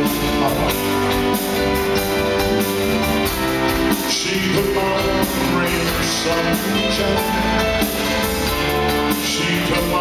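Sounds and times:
keyboard: 0.0 - 10.0.

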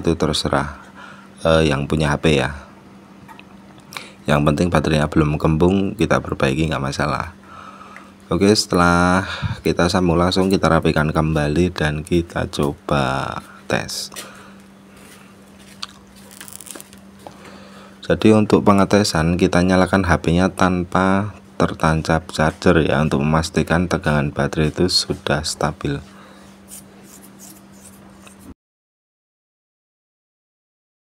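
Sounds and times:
low electrical hum: 0.0 - 28.6.

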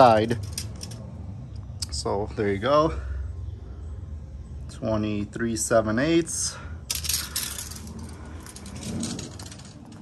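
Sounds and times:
tape measure rattling: 6.9 - 10.0.

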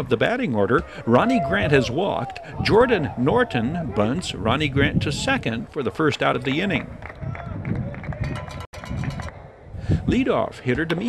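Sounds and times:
crowd murmur: 0.0 - 7.6
distant voices: 0.0 - 7.7.

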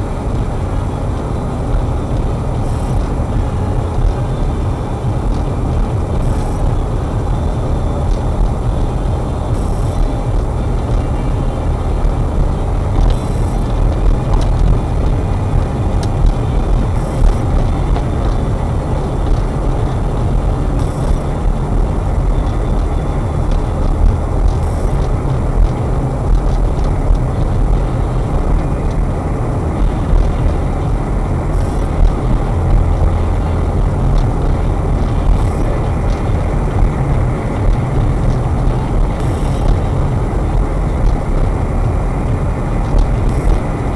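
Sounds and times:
car engine and tyre rumble: 0.0 - 43.9.

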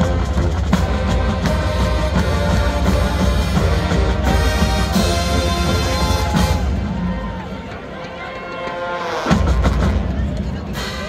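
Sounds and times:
marching band held notes: 0.0 - 11.0
spectators talking: 0.0 - 11.0.

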